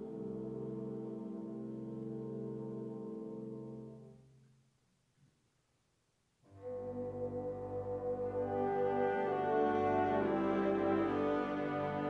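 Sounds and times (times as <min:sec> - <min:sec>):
brass chord: 0:06.5 - 0:12.0
wind ensemble chord: 0:06.7 - 0:12.0.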